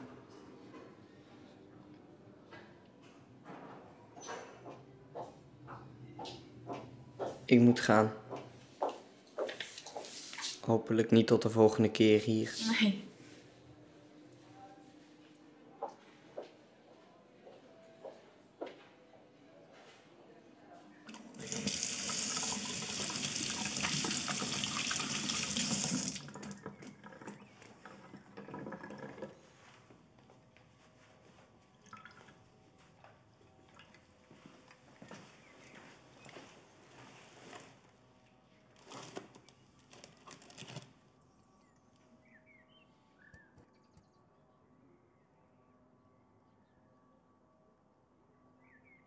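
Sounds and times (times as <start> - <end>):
kitchen tap running: 21.1 - 29.3.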